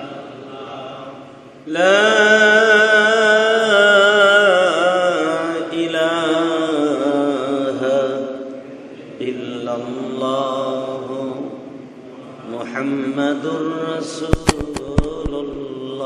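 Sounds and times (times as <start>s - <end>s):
man chanting into a microphone: 0.1s - 16.0s
sharp clicks: 14.3s - 15.6s.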